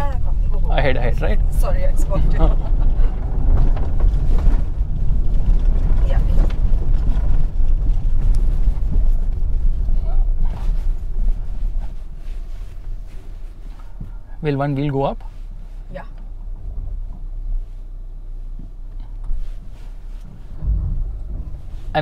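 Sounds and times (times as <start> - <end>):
car engine: 0.0 - 22.0
tyres rumbling on dirt track: 0.0 - 22.0.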